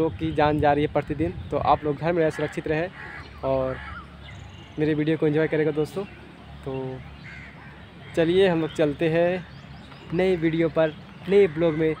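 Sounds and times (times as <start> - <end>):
crow cawing: 1.7 - 4.4, 7.0 - 8.8, 11.3 - 12.0.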